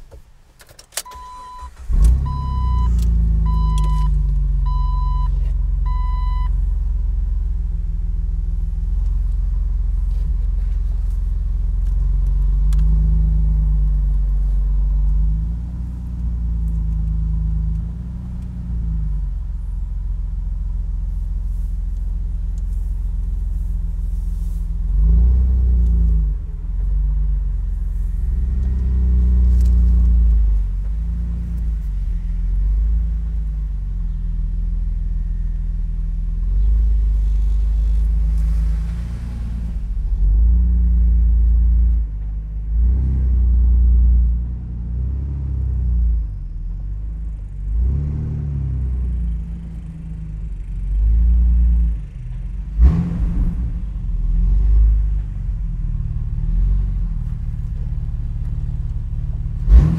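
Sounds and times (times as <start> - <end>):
car engine and exhaust rumble: 0.0 - 59.9.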